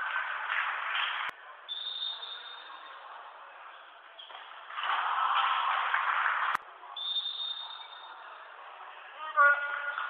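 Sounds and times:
faint hall ambience: 0.0 - 10.0
referee's whistle: 1.7 - 2.9, 7.0 - 8.1.

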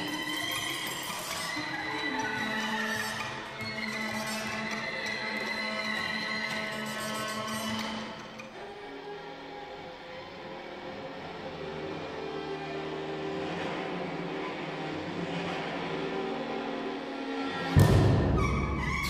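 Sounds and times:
chamber ensemble of strings and winds: 8.4 - 19.0.

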